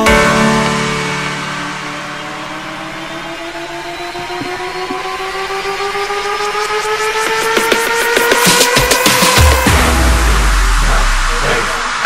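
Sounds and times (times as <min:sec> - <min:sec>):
synth tones rising in pitch: 0:00.0 - 0:12.0
low hum: 0:09.6 - 0:12.0.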